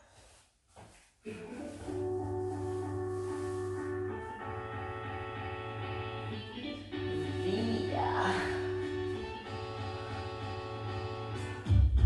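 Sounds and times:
jazz hip-hop music: 1.3s - 12.0s.

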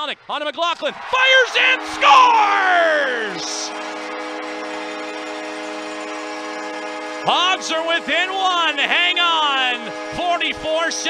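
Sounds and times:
crowd noise: 0.8s - 4.4s
arena goal horn: 1.2s - 11.0s.

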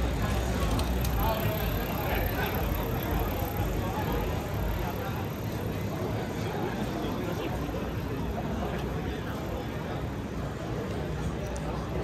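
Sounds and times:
indistinct chatter of passersby: 0.0s - 12.0s.

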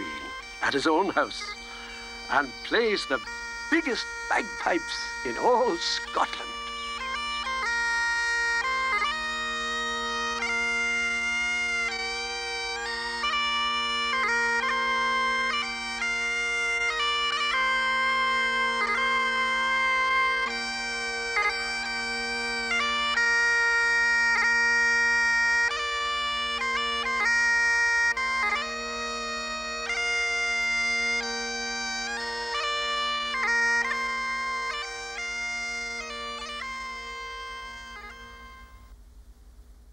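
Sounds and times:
bagpipe drones: 0.0s - 39.0s
bagpipe melody: 0.0s - 39.0s.

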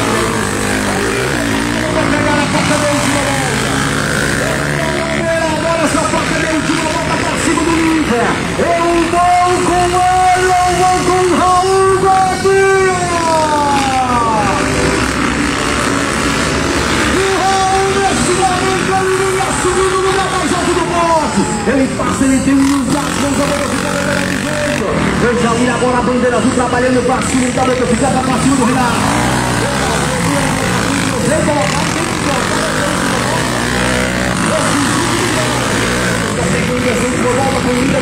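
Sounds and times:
dirt bike engines revving: 0.0s - 38.0s.

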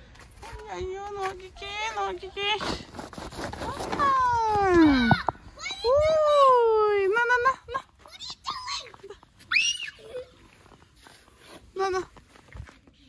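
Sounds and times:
child wailing and squealing: 9.5s - 10.4s.

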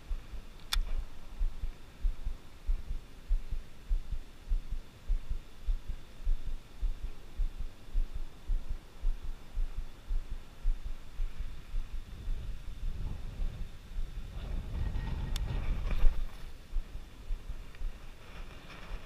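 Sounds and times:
faint steady hiss: 0.0s - 19.0s.

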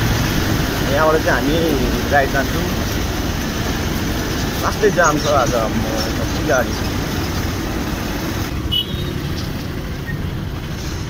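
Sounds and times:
motorbike engine rumble: 0.0s - 11.0s.

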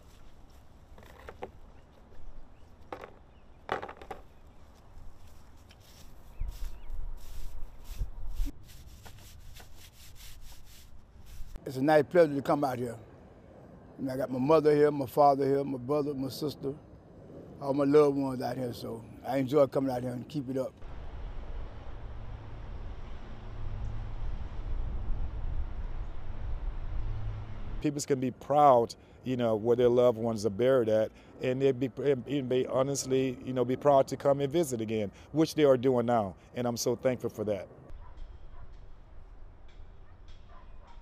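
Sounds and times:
distant traffic rumble: 0.0s - 41.0s
low outdoor rumble: 10.6s - 29.2s.

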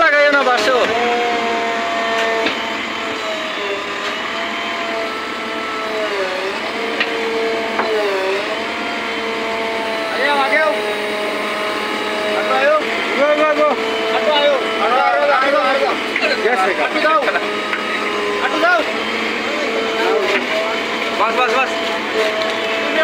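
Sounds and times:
people talking: 0.0s - 1.2s, 10.1s - 10.8s, 12.3s - 21.8s, 22.6s - 23.0s
backhoe loader engine whining: 0.0s - 23.0s.

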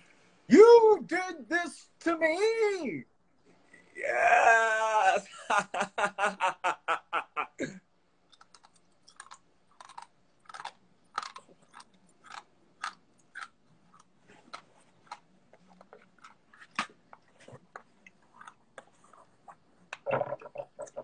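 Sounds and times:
person chewing crunchy gum: 8.3s - 21.0s.

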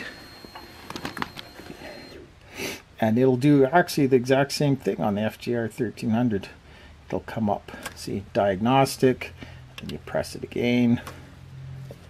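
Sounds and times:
faint high whine: 0.0s - 2.4s.

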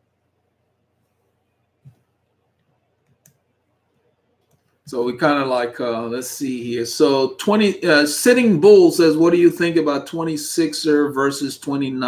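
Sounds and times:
man speaking: 4.9s - 12.0s.

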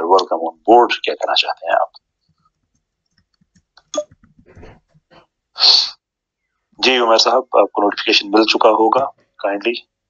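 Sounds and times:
man speaking: 0.0s - 2.0s, 5.6s - 6.0s, 6.8s - 9.8s.

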